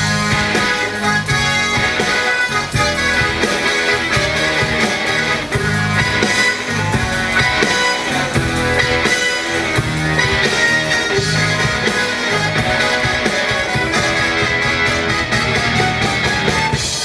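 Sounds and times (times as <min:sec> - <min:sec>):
bass: 0:00.0 - 0:17.0
drums: 0:00.0 - 0:17.0
electric guitars: 0:00.0 - 0:17.0
keyboard: 0:00.0 - 0:17.0.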